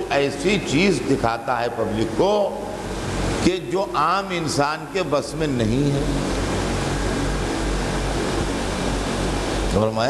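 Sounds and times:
even hiss: 0.0 - 10.0
low electrical hum: 0.0 - 10.0.

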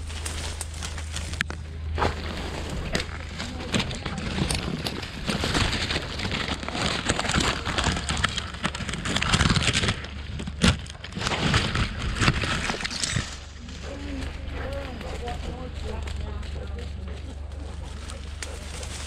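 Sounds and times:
leaves and twigs rustling: 0.0 - 19.0
low hum: 0.0 - 19.0.

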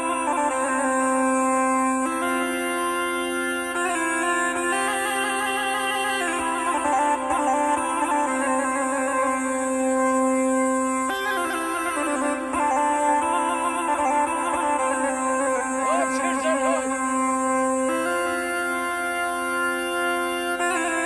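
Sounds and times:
folk music with low drone: 0.0 - 21.0.

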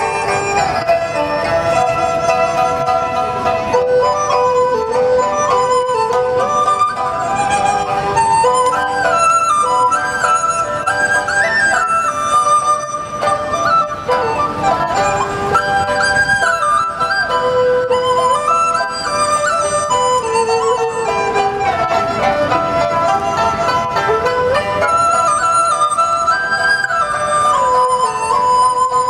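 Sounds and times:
bamboo flute melody: 0.0 - 29.0
traditional string ensemble: 0.0 - 29.0.

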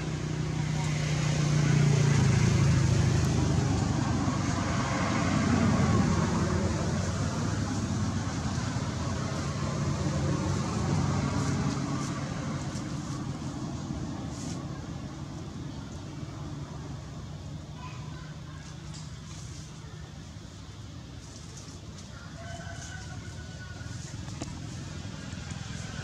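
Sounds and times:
vehicle passing: 0.0 - 17.7, 22.4 - 26.0.

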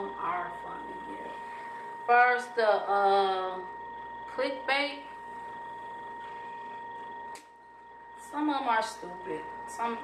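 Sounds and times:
high-pitched electronic whine: 0.0 - 10.0.

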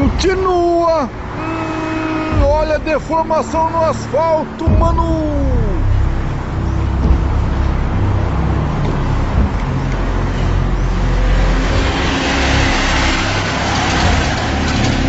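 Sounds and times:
car passing with tyre hiss: 0.0 - 4.5, 5.4 - 15.0
low traffic rumble: 0.0 - 15.0.

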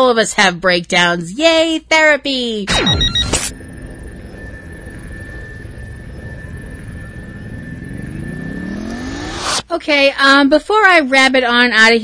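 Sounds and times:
rumble: 2.7 - 9.6
whine rising in pitch: 2.7 - 9.7
steady high tone: 2.7 - 9.8.

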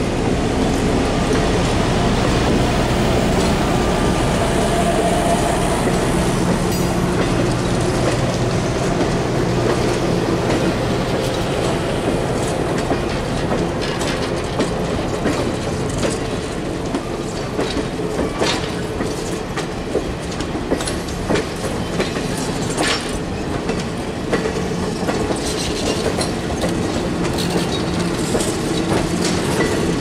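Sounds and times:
train wheels rumbling on rail: 0.0 - 30.0
wheels clicking over rail joints: 0.3 - 30.0.

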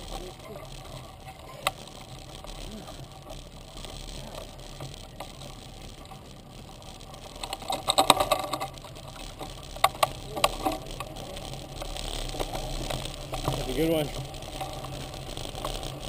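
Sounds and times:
bike rattling over bumps: 0.0 - 16.0
mountain bike rolling on dirt: 0.0 - 16.0.

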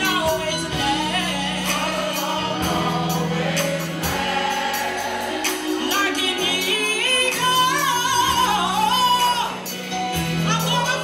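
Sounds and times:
gospel choir singing: 0.0 - 11.0
live band with organ: 0.0 - 11.0.

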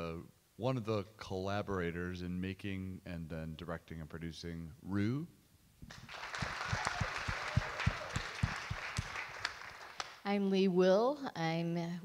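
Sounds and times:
audience applause: 5.9 - 10.2.

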